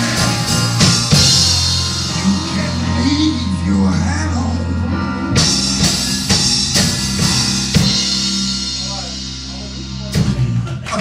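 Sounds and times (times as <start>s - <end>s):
drum and cymbal hits: 0.0s - 3.4s, 5.3s - 11.0s
piano chord: 0.0s - 10.5s
low bass note: 0.0s - 10.6s
rock band playing: 0.0s - 11.0s.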